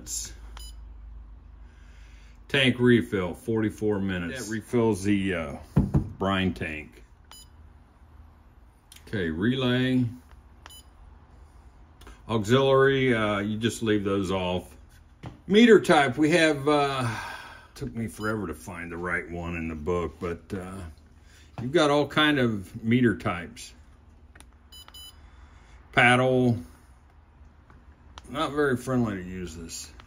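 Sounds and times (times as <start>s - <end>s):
high-pitched touchscreen beeps: 24.7s - 25.2s.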